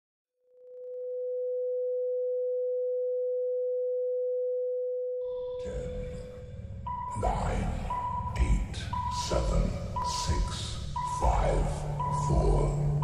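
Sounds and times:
sine test tone: 0.5 - 13.0.

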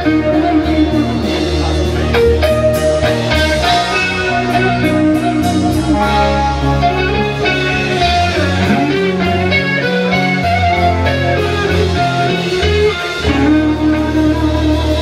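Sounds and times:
electric guitar rock music: 0.0 - 15.0.

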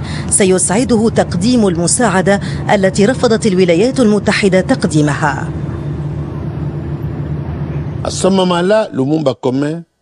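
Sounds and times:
low mechanical drone: 0.0 - 9.2.

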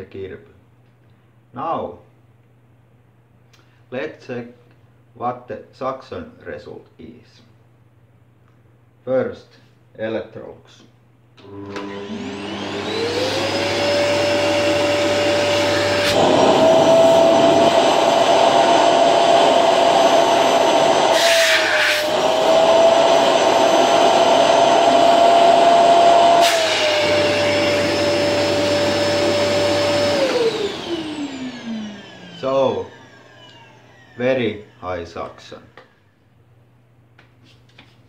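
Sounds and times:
vacuum cleaner motor whining: 11.4 - 34.9.

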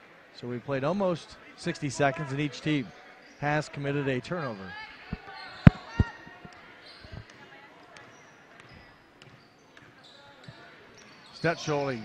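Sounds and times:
faint chatter: 1.3 - 11.8.

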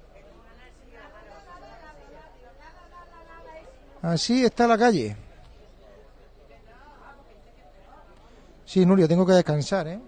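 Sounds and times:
distant people talking: 0.0 - 10.0.

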